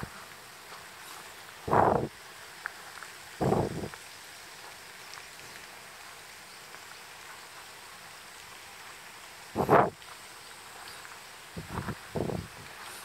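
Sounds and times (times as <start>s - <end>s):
faint outdoor hiss: 0.0s - 13.0s.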